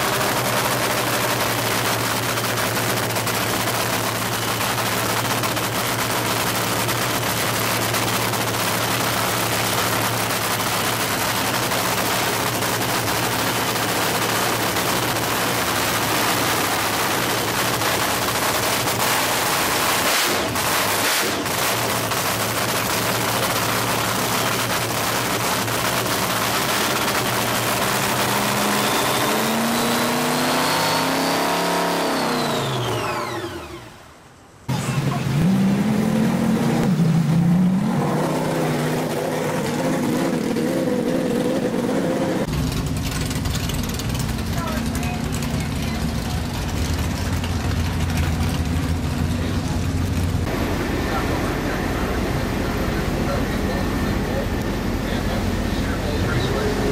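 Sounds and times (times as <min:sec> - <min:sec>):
engine running steadily: 0:00.0 - 0:56.9
supercharged engine whining: 0:00.0 - 0:56.9.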